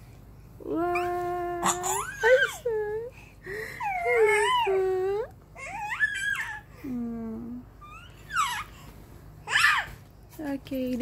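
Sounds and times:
baby cooing and squealing: 3.8 - 5.0, 5.6 - 6.7, 7.8 - 10.0.

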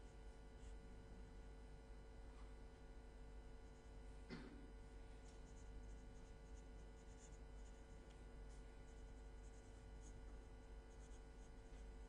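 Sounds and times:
low steady hum: 0.0 - 12.0
pen scratching on paper: 5.2 - 12.0.

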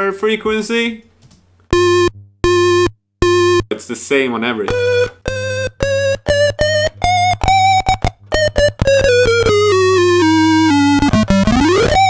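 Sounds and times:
synth low hum: 1.7 - 3.7
toy synthesizer notes: 4.7 - 12.0.

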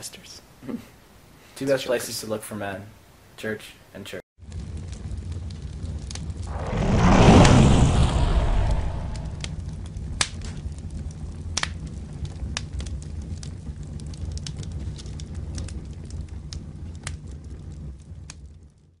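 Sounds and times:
fire crackles and pops: 4.4 - 19.0
flames rumbling: 4.4 - 19.0.

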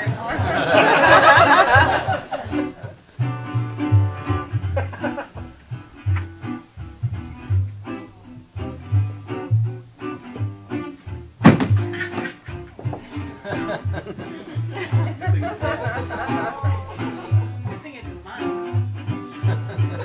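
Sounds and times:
plucked string instrument: 0.0 - 20.0
washtub bass plucking: 0.0 - 20.0
sharp thump: 11.4 - 12.2.

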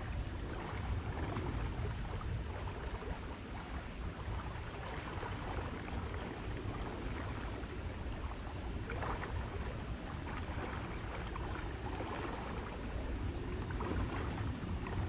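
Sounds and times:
wind blowing over microphone: 9.0 - 15.0.

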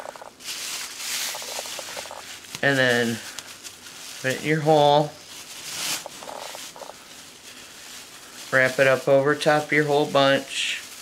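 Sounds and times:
plastic bag strips crinkling: 0.0 - 11.0.

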